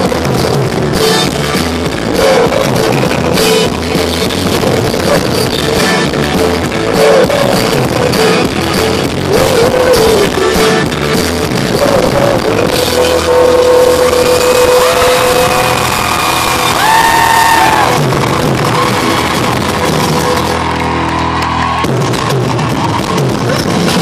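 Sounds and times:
acoustic guitar: 0.0 - 24.0
drums: 0.0 - 24.0
live band playing pop-rock: 0.0 - 24.0.

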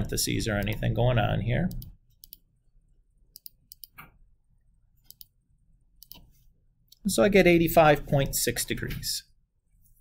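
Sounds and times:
computer mouse clicks: 1.7 - 2.5, 3.3 - 4.2, 5.0 - 5.4, 6.0 - 6.3.

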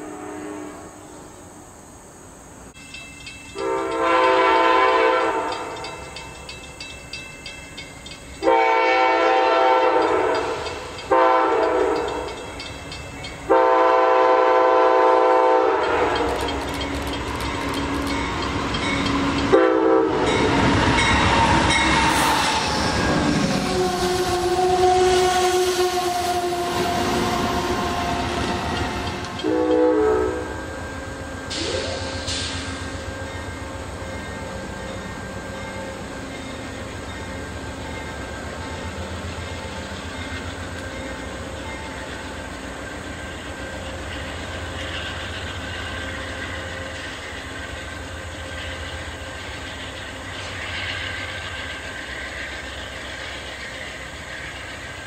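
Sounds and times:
train horn blasts: 0.0 - 1.2, 3.6 - 6.0, 8.4 - 12.4, 13.4 - 16.4, 19.4 - 32.3
train engine rumble: 0.0 - 55.0
wheels clacking over rails: 15.8 - 19.6, 26.9 - 29.9.

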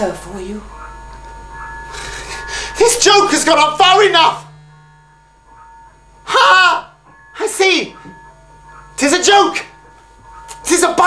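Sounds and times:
person crying out: 6.3 - 6.9.

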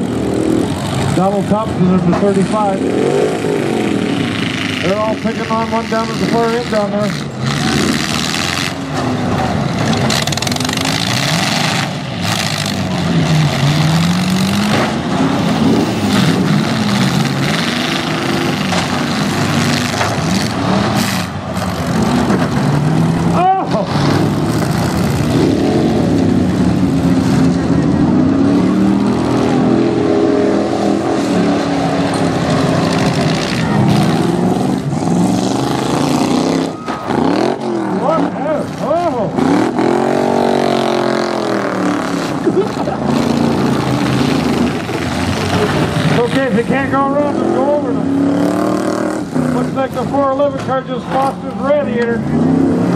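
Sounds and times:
car engines revving: 0.0 - 52.9.

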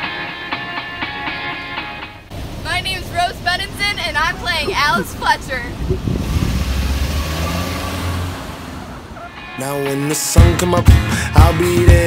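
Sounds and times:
car pulling away: 1.0 - 9.7.

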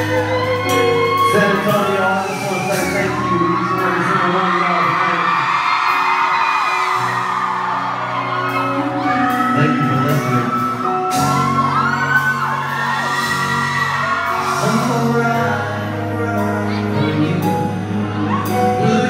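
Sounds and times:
man singing into microphone: 0.0 - 5.0, 8.6 - 10.7, 14.4 - 19.0
steady bass: 0.0 - 5.7, 7.0 - 19.0
audience whooping and yelling: 0.0 - 19.0.

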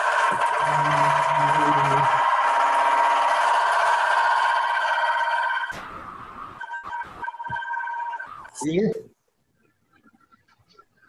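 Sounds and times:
shrill electronic ringing: 0.0 - 8.7
broken electronic beeps: 0.2 - 8.8.

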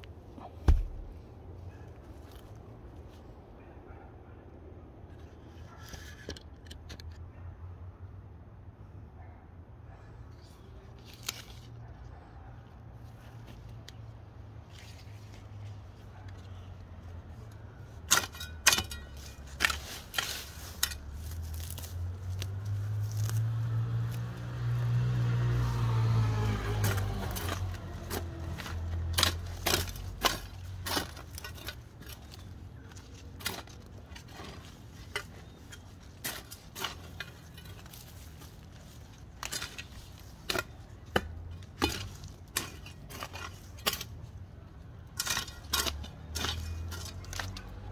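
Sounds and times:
hoe chopping into soil: 0.6 - 1.1, 18.0 - 25.4, 26.0 - 32.4, 39.4 - 44.1
motor vehicle passing: 21.2 - 30.9.

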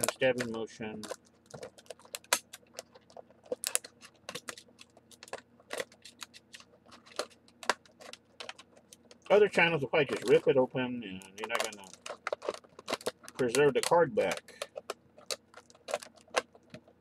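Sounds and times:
plastic blister pack crackling: 0.0 - 17.0.

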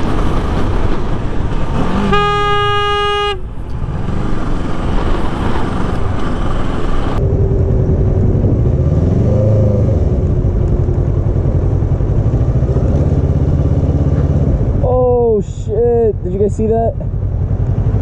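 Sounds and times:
wind rush: 0.0 - 2.2, 2.8 - 15.4
motorcycle engine drone: 0.0 - 18.0.

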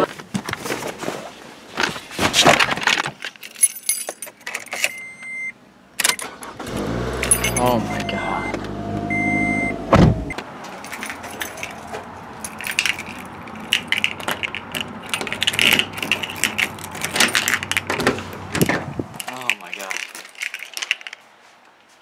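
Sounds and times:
keys jangling: 3.3 - 5.0, 7.1 - 8.2, 10.7 - 18.2, 19.2 - 21.2
door knob and latch rattling: 12.5 - 18.9.

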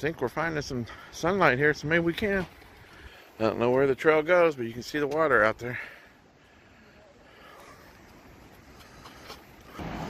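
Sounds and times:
soft clicks and rustles: 7.6 - 9.8.

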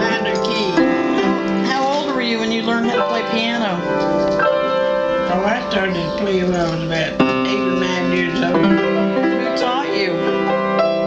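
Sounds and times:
piano chords and melody: 0.0 - 11.0.

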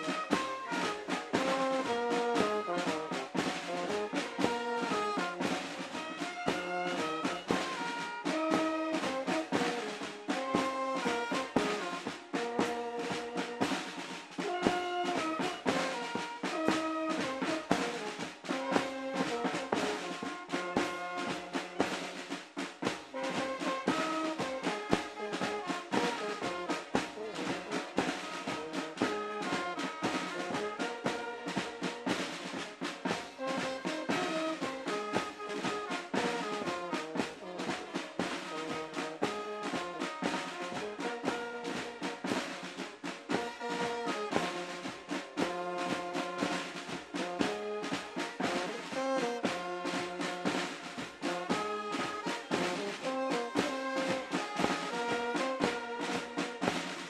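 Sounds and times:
brass melody: 0.0 - 57.0
snare drums beating and rolling: 0.0 - 57.0.

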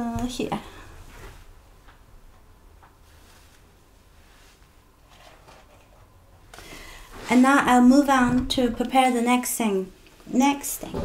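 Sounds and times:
faint rustles: 2.9 - 7.7.

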